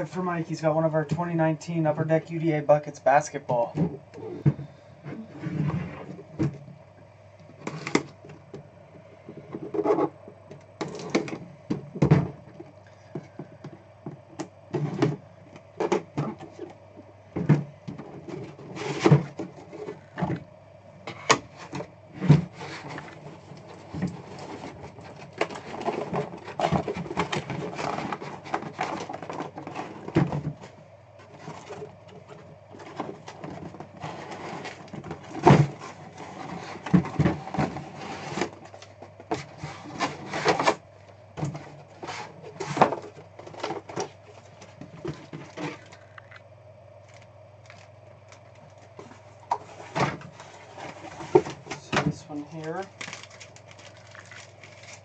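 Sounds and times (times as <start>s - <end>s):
steady low hum: 0.0s - 55.0s
cardboard rustling: 21.1s - 46.4s, 47.1s - 55.0s.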